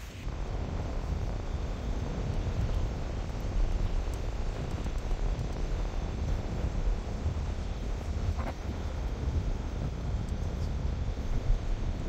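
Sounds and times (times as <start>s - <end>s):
low rumbling noise: 0.0s - 12.0s.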